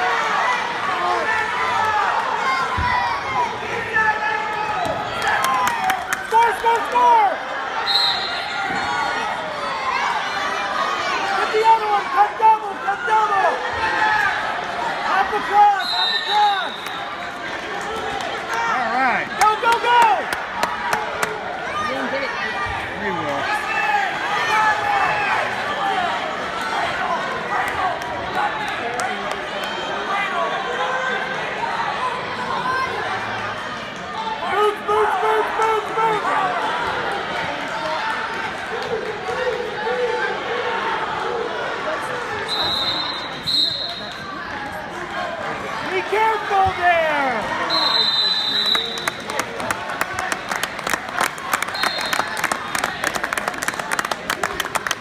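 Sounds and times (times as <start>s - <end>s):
spectators shouting and cheering: 0.0s - 55.0s
people clapping: 5.0s - 7.2s, 16.6s - 21.4s, 27.5s - 29.8s, 37.3s - 40.0s, 48.3s - 55.0s
high whistle blasts: 7.8s - 8.6s, 15.8s - 17.1s, 42.5s - 44.2s, 47.6s - 49.1s.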